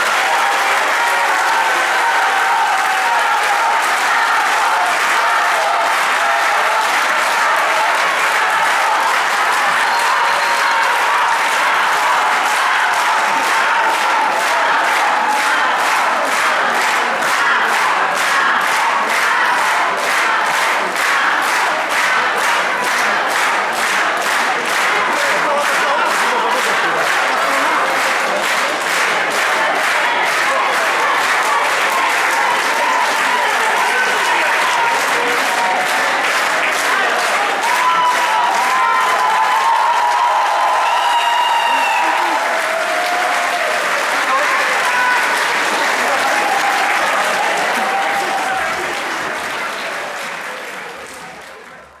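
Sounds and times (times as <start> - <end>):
crowd shouting: 0.0 - 49.1
audience applauding: 0.0 - 52.0.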